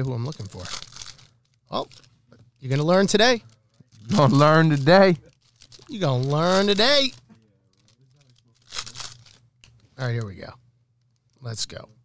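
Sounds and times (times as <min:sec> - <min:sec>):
wrapper tearing open: 0:00.0 - 0:02.1, 0:02.7 - 0:09.4.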